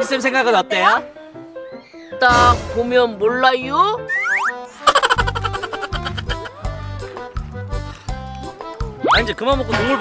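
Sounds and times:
upbeat music with bass: 5.2 - 10.0.

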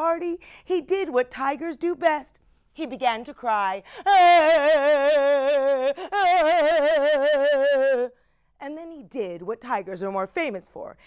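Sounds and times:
woman mimicking tiger cries: 4.0 - 8.2.

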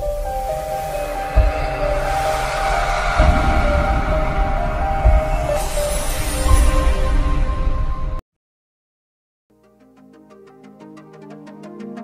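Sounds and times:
held steady music tones: 0.0 - 8.2
deep low hits: 0.1 - 8.0.

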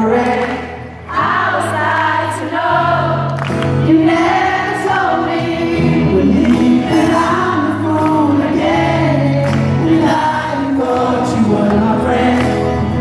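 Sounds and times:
acoustic guitar: 0.0 - 13.0
crowd singing pop ballad: 0.0 - 13.0.

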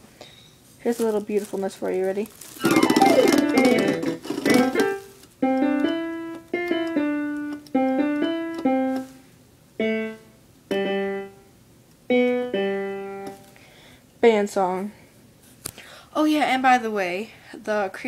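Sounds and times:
electronic keyboard piano notes: 2.6 - 9.2, 9.8 - 11.5, 12.1 - 13.5.

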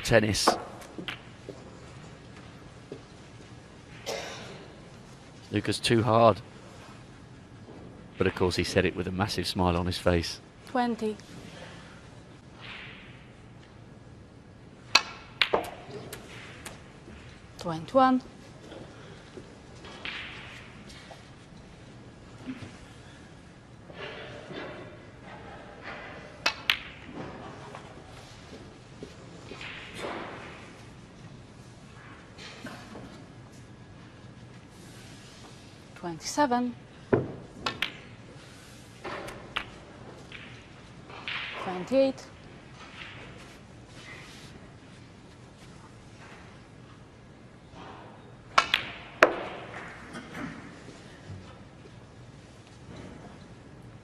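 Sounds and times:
balls clacking together: 0.0 - 5.0, 14.8 - 17.7, 18.6 - 22.8, 23.9 - 31.3, 37.1 - 43.6, 47.7 - 52.0
snooker balls colliding: 14.8 - 17.3, 19.7 - 20.9, 25.4 - 28.4, 37.1 - 41.7, 48.5 - 51.0.

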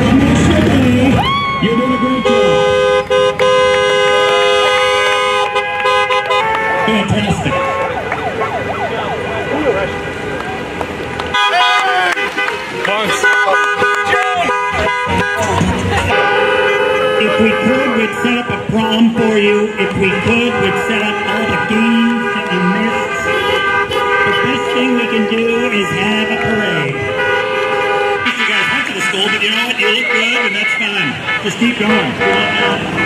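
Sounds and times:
people cheering and shouting: 0.0 - 2.6, 5.5 - 16.5, 28.3 - 32.8
car horns honking: 0.0 - 33.0.

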